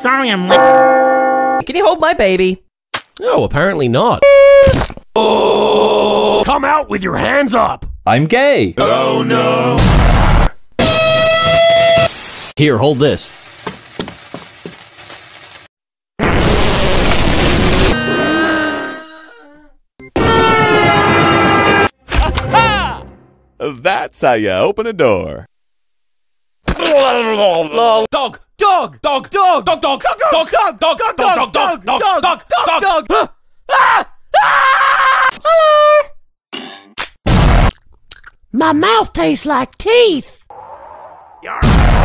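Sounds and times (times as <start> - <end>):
loud cartoon explosion: 9.7 - 10.6, 16.2 - 18.0, 37.3 - 37.7, 41.5 - 42.0
cartoon character screaming: 17.9 - 19.6, 33.7 - 36.1.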